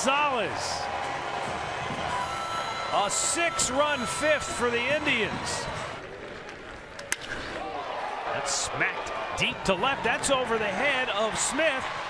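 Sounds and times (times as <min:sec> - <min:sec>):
stadium crowd murmur: 0:00.0 - 0:12.0
wooden bat cracking a ball: 0:06.5 - 0:07.6.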